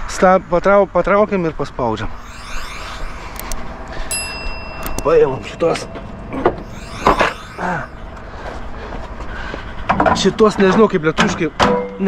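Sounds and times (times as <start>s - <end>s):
ringing chime: 2.1s - 9.0s.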